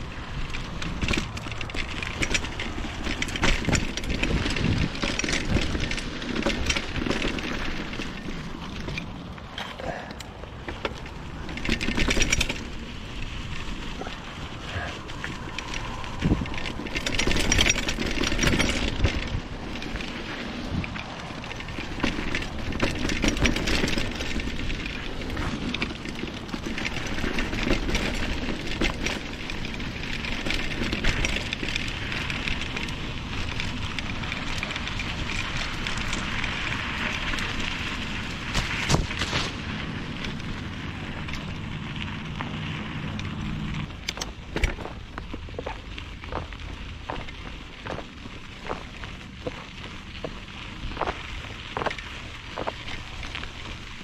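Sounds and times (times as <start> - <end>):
wind noise: 0.0 - 9.6, 10.5 - 54.0
bike rattles and knocks: 0.0 - 54.0
bike tyre rumble on dirt: 0.0 - 54.0.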